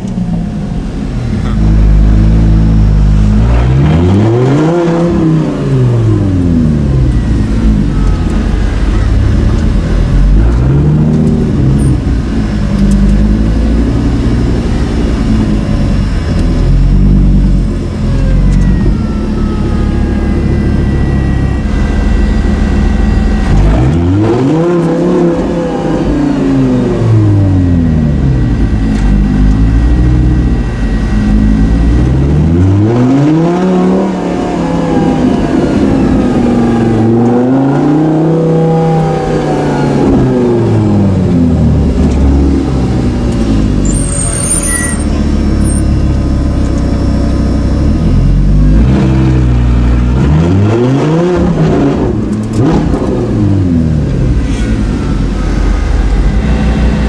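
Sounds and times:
car engine rumbling and revving: 0.0 - 57.0.

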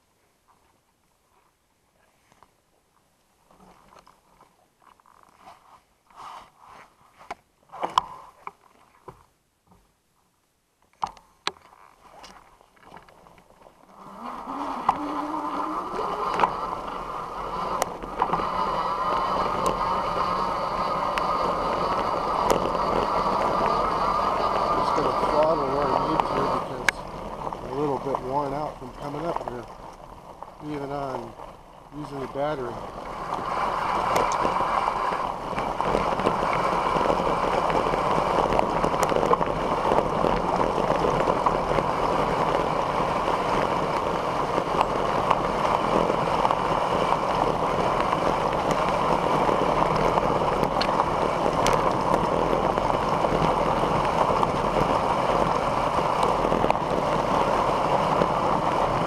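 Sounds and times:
gravel clicks: 2.2 - 5.6, 10.8 - 59.0
bike tyres rolling on gravel: 11.6 - 59.0
electric motor hum rising in pitch: 13.9 - 29.7, 32.0 - 59.0
stones ticking and rattling: 24.8 - 59.0.

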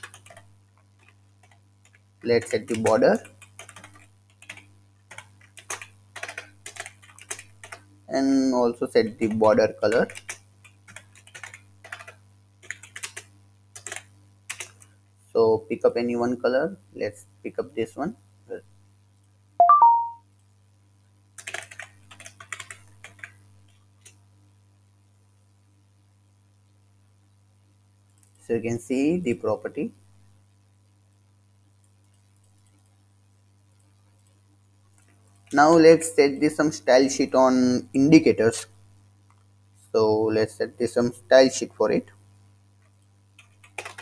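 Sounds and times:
keyboard typing: 0.0 - 7.9, 9.2 - 14.9, 19.6 - 20.2, 21.4 - 24.2, 43.4 - 44.0
faint low hum: 0.0 - 44.0
electronic three-note blip: 19.6 - 20.2.

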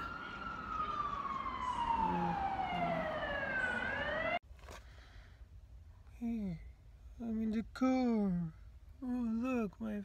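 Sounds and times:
emergency vehicle siren wailing: 0.0 - 4.4.

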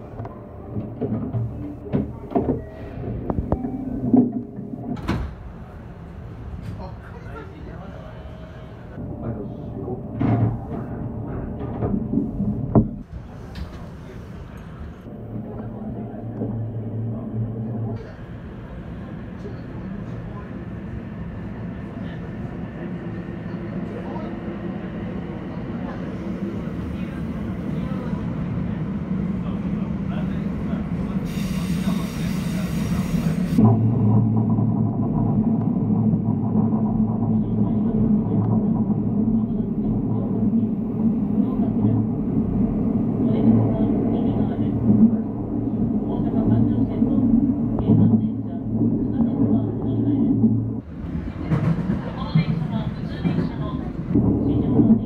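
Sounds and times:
electric train running in tunnel: 0.0 - 55.0.

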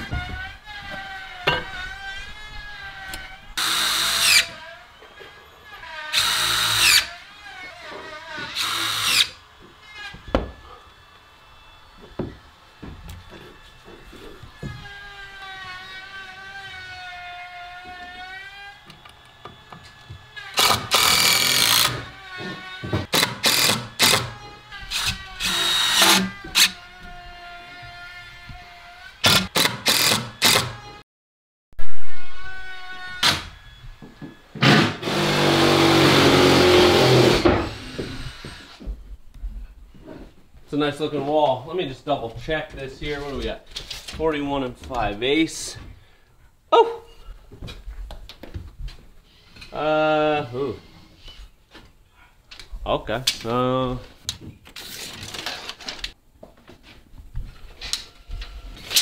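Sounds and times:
cordless drill driving screws: 0.6 - 4.8, 5.6 - 10.1, 18.2 - 28.0, 29.0 - 31.0, 34.6 - 38.8.

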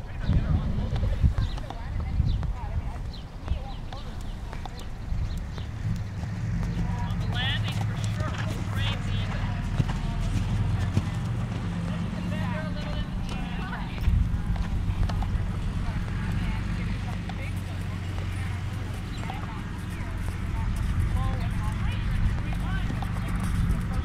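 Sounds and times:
steady low rumble: 0.0 - 24.0
horse hoofbeats on sand: 0.2 - 24.0.

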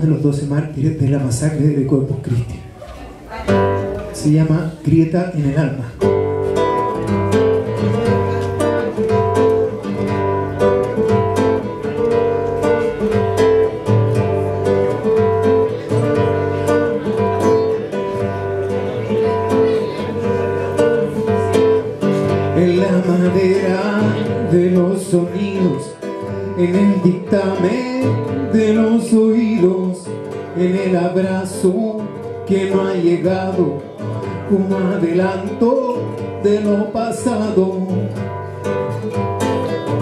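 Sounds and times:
fingerstyle nylon-string guitar: 0.0 - 40.0.

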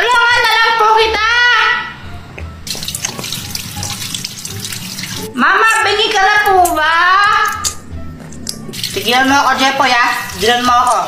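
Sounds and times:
water running from a tap: 2.6 - 5.3, 8.7 - 11.0.

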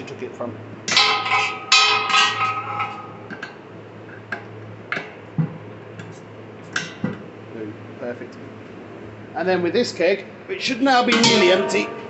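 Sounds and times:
steady low hum: 0.0 - 12.0
metal keg clanging: 0.9 - 3.6, 10.9 - 12.0.

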